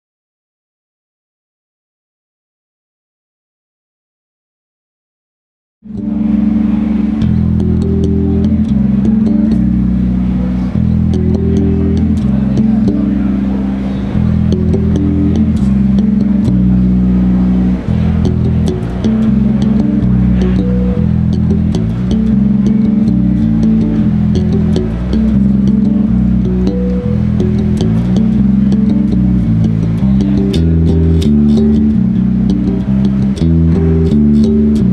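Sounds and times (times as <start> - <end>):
electric bass guitar low notes: 5.8 - 34.9
string and fret clicks: 5.9 - 34.9.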